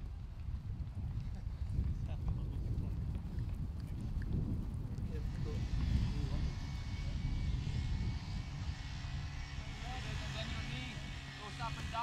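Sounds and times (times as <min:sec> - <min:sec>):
wind rumble on microphone: 0:00.0 - 0:12.0
distant engine drone: 0:05.1 - 0:12.0.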